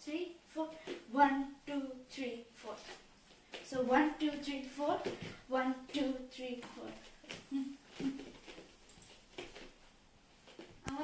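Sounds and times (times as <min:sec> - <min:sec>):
bare feet thudding on wooden floor: 0:03.0 - 0:10.8
girl humming: 0:07.5 - 0:08.2.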